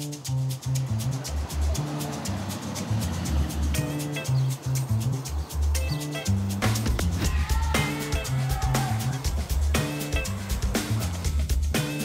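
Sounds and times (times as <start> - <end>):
heavy bass notes: 0.0 - 12.0
quick percussion ticks: 0.0 - 12.0.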